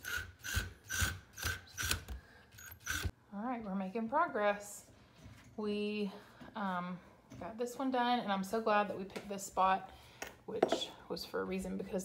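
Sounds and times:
cordless drill driving screws: 0.0s - 3.1s.

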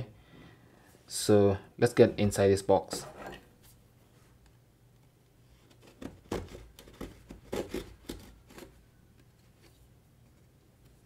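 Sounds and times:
knife scraping cardboard box seal: 5.7s - 8.8s.

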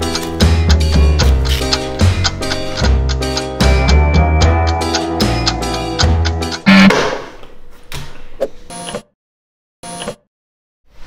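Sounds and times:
background music: 0.0s - 7.1s
loud musical hit: 6.2s - 7.3s
short pitched electronic effect: 6.6s - 7.0s.

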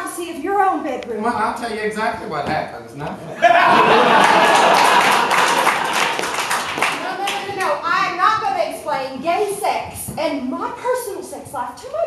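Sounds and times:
audience laughing: 3.3s - 6.4s
audience clapping: 3.7s - 8.0s.

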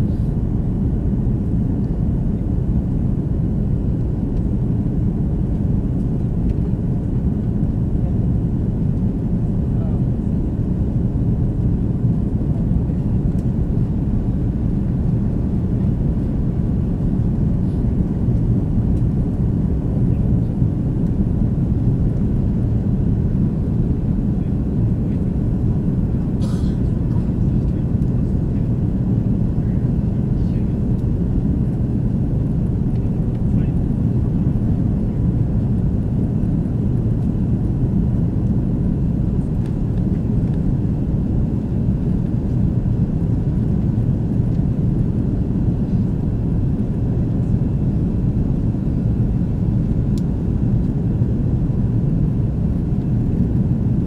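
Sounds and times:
jet engines droning: 0.0s - 54.0s.

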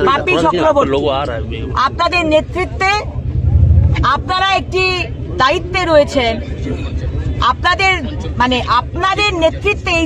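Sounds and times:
low rumble: 3.1s - 4.7s.

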